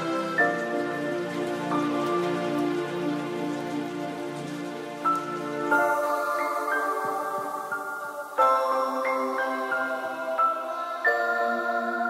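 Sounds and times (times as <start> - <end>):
even hiss like rain: 0.0 - 12.0
slow sustained chords music: 0.0 - 12.0.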